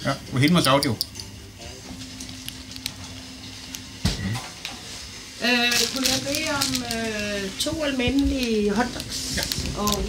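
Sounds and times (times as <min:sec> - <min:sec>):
sausages sizzling on griddle: 0:08.6 - 0:10.0.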